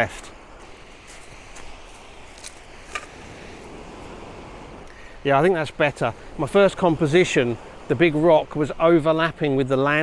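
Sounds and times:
sea surf: 0.0s - 10.0s
wind: 0.0s - 10.0s
footsteps on pebbles: 0.6s - 3.2s.

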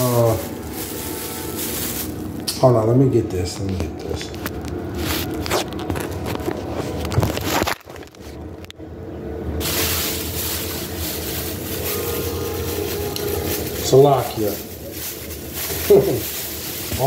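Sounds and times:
steady hiss: 9.6s - 17.0s.

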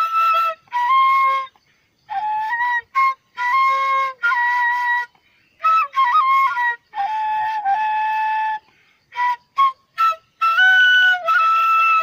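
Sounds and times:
bamboo flute melody: 0.0s - 12.0s.

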